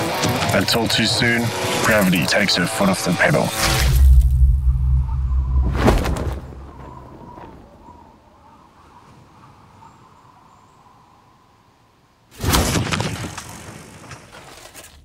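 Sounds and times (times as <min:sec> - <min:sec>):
deep low rumble: 0:03.9 - 0:06.7.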